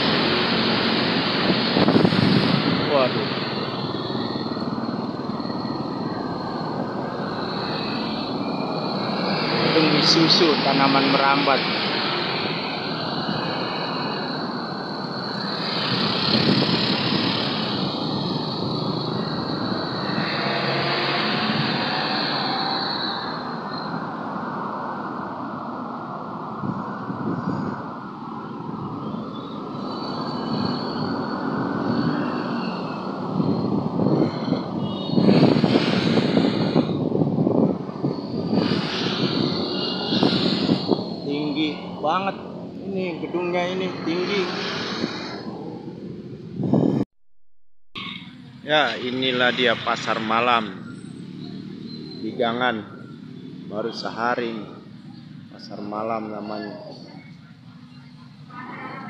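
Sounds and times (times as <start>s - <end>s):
busy street traffic: 0.0s - 47.1s, 48.0s - 59.0s.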